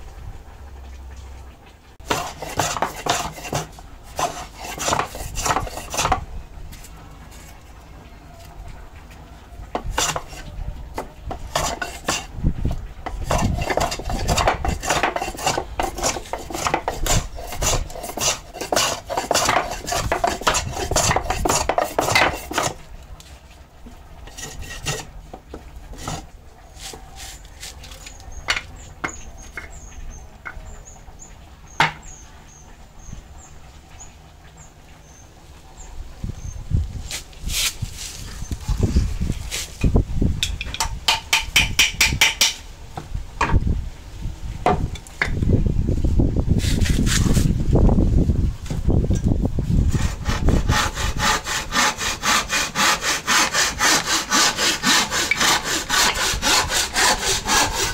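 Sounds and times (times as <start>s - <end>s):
metal blade scraping wood block: 2.0s - 6.2s, 9.7s - 12.3s, 13.0s - 22.8s, 24.2s - 25.1s, 25.9s - 29.8s, 49.9s - 57.9s.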